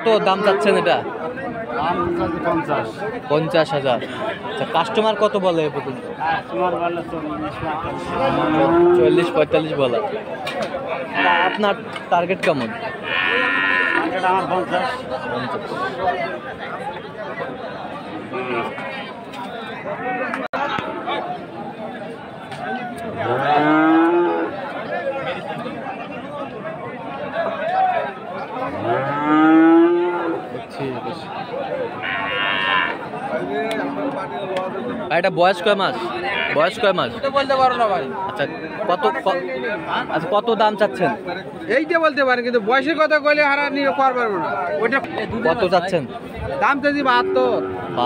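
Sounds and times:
people chattering: 0.0s - 48.0s
cow mooing: 7.8s - 9.4s, 13.0s - 14.2s, 23.2s - 24.5s, 28.7s - 30.5s, 32.0s - 33.1s, 47.0s - 48.0s.

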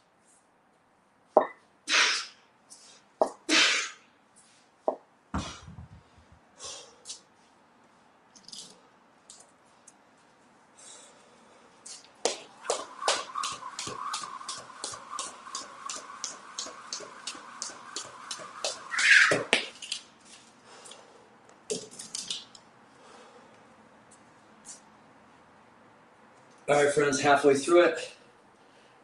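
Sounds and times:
sharp exhales: 6.6s - 7.1s
jump rope ticking on floor: 12.2s - 20.0s.

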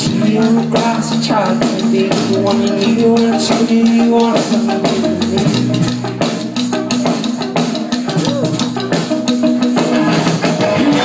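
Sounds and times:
bass guitar: 0.0s - 11.0s
drum-kit beat: 0.0s - 11.0s
electric guitars: 0.0s - 11.0s.

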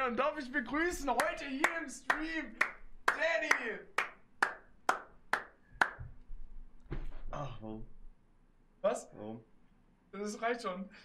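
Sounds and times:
hand clapping: 1.1s - 6.2s
person dropping into chair: 6.9s - 7.3s.

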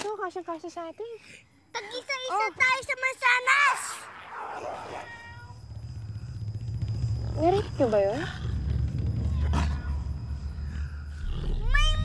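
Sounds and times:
animal growling: 4.1s - 12.0s.

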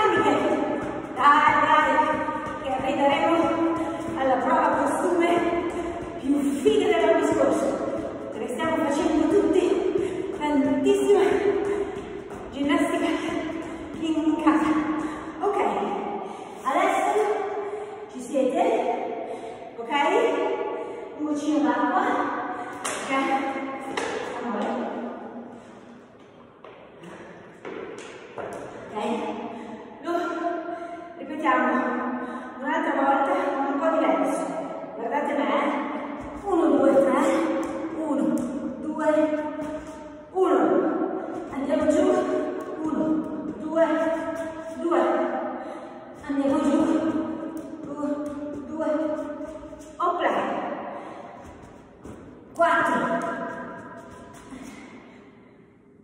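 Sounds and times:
woman's voice: 0.0s - 16.0s, 16.6s - 19.0s, 19.6s - 20.5s, 21.2s - 25.1s, 28.9s - 30.6s, 31.2s - 39.4s, 40.4s - 45.4s, 46.2s - 47.2s, 47.8s - 49.3s, 49.9s - 50.7s, 52.6s - 53.5s.

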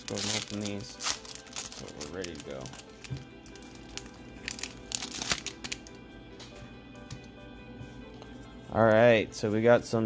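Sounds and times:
plastic packaging crinkling: 0.0s - 6.0s
background music: 0.0s - 10.0s.

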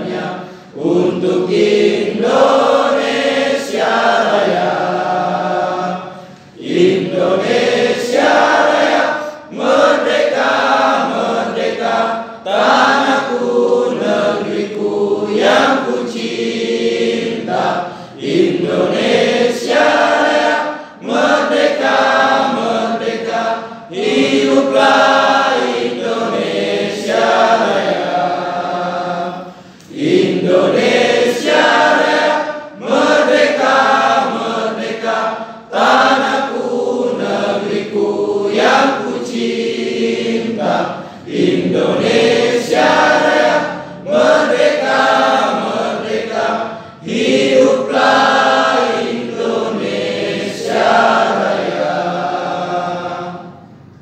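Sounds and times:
crowd singing in unison: 0.0s - 54.0s.

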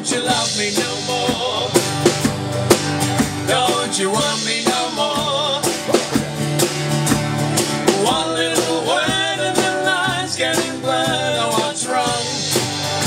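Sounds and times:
person singing: 0.0s - 1.9s, 3.5s - 6.1s, 7.9s - 12.7s
acoustic guitar strumming: 0.0s - 13.0s
steady beat: 0.3s - 13.0s.

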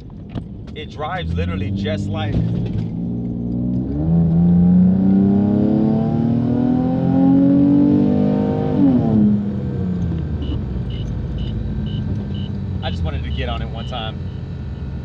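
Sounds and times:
car engine accelerating: 0.5s - 15.0s.

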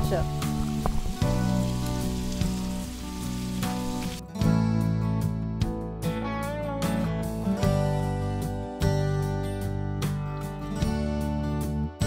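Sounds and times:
food sizzling on a griddle: 0.0s - 4.2s
background music: 0.0s - 12.0s.

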